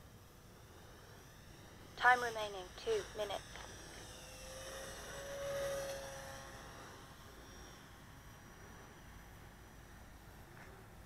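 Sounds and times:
model plane motor and propeller whining: 0:00.0 - 0:11.0.

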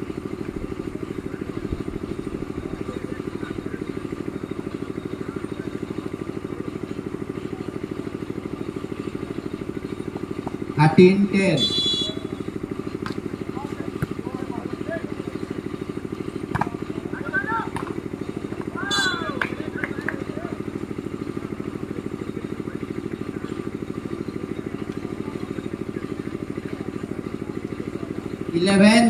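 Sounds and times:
steady pulsing engine drone: 0:00.0 - 0:29.0
short shouts: 0:18.7 - 0:19.5.

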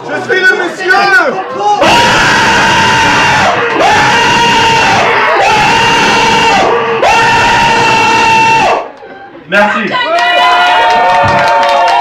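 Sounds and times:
person screaming: 0:01.8 - 0:08.8
dense noisy music: 0:01.8 - 0:08.9.

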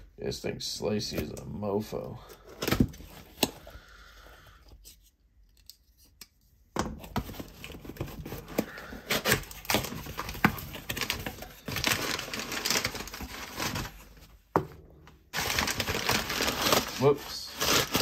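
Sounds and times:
packaging being torn open: 0:15.4 - 0:18.0.

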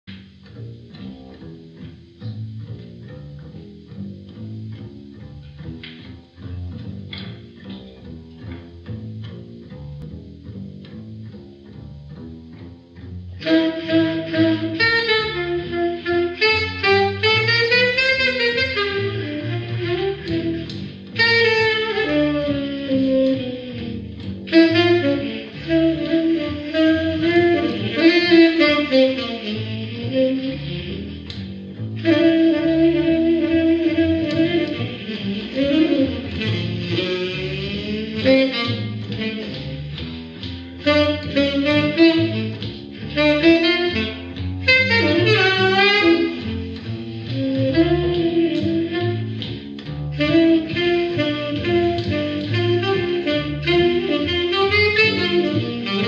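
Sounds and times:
piano: 0:00.0 - 0:56.0
plucked double bass: 0:00.1 - 0:56.0
saxophone melody: 0:10.2 - 0:56.0.

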